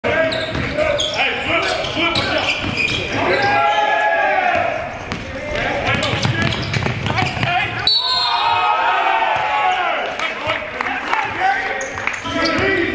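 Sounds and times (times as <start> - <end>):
players shouting: 0.2 - 12.9
basketball bouncing on wooden floor: 5.9 - 7.7.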